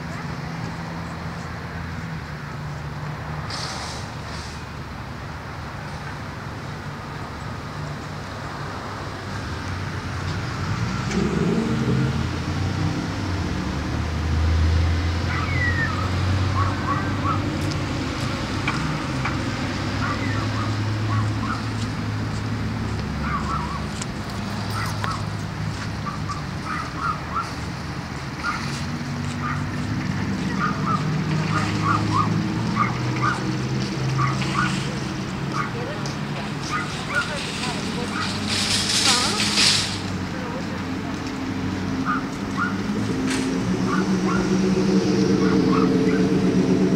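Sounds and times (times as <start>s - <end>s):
car engine humming: 6.6s - 46.9s.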